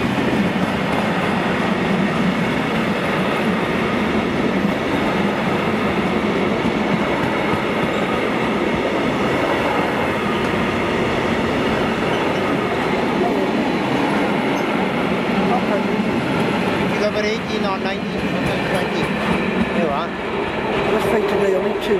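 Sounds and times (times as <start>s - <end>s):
freight train wheels rumbling on rail: 0.0s - 21.9s.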